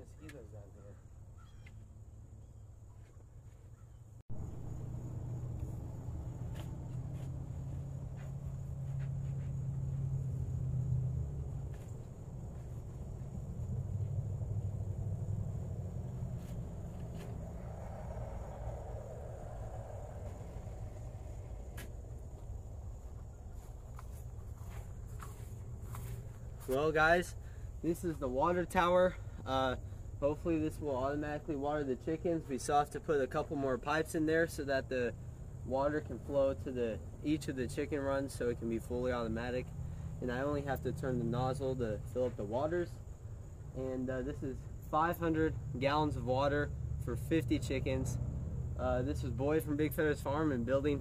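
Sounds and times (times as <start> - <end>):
low rumble: 4.3 - 24.0.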